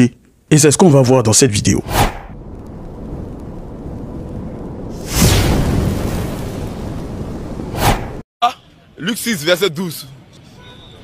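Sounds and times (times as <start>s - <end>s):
steady low rumble: 2.3s - 7.7s
sudden hit: 4.9s - 7.1s.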